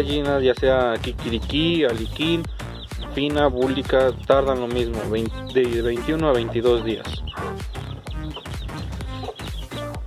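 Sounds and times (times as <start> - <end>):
background music: 0.0 - 10.0
hen clucking: 1.5 - 10.0.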